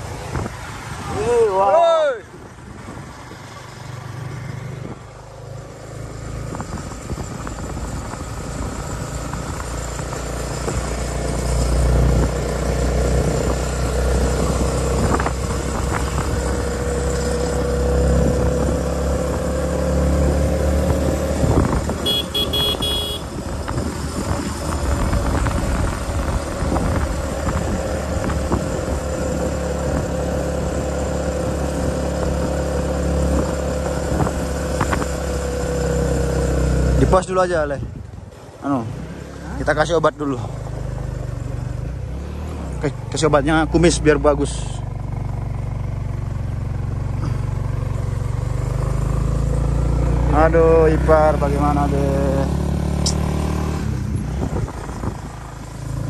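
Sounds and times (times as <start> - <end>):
motorcycle engine cruising: 2.3 - 56.0
wind buffeting microphone: 20.8 - 22.0, 23.2 - 32.6, 53.8 - 55.8.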